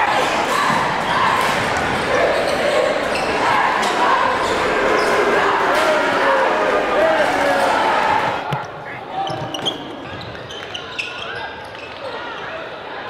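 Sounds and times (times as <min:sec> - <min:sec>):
crowd chatter echoing: 0:00.0 - 0:13.0.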